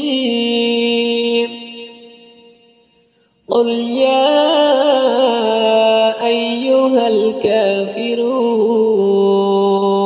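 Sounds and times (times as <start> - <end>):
person reciting in a long note: 0.0 - 10.0
voice echo: 0.0 - 10.0.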